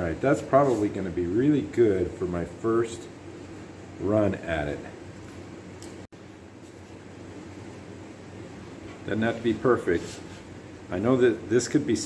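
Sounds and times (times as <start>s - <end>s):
room hum with hiss: 0.0s - 12.0s.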